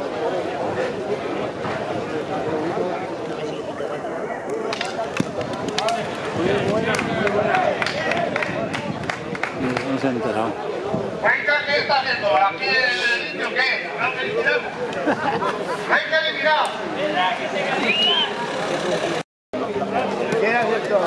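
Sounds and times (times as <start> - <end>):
crowd chatter: 0.0 - 21.0.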